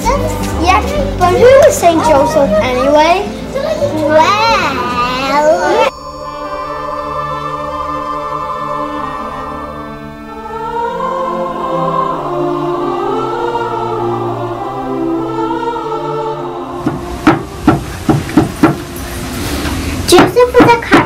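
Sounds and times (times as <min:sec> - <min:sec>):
slow choral music: 0:00.0 - 0:20.1
wooden mallet striking chisel: 0:16.8 - 0:18.9.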